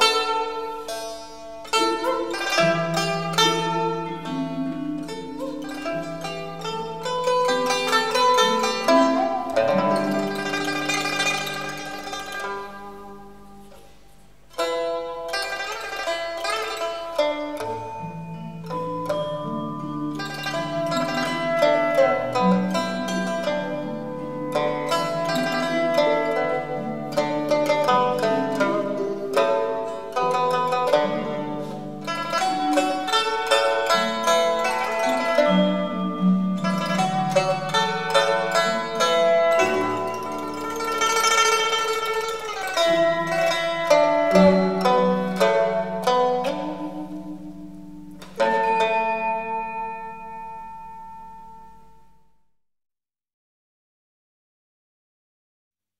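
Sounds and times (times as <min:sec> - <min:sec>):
plucked lute melody: 0:00.0 - 0:52.2.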